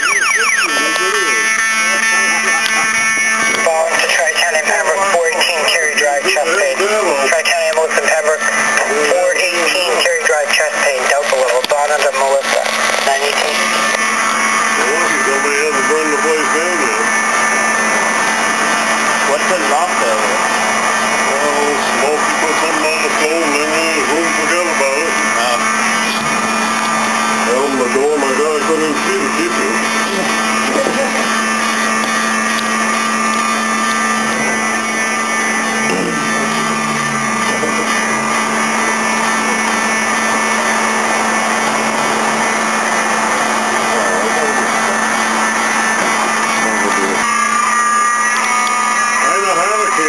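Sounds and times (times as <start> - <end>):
people's voices: 0.0 - 18.2, 19.0 - 20.5, 21.1 - 32.0, 33.8 - 47.3, 48.3 - 50.0
fire alarm buzzing: 0.0 - 50.0.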